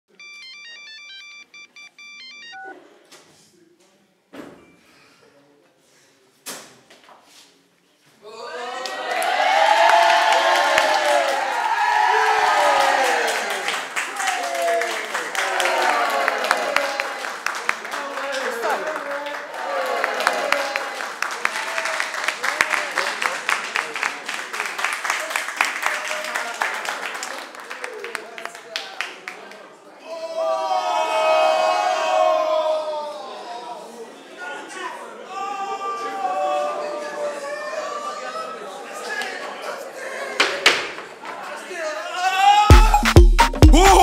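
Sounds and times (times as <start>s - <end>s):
electronic beeping melody: 0.1s - 2.8s, 42.7s - 44.0s
people clapping: 8.7s - 29.8s, 40.4s - 41.6s, 42.7s - 44.0s.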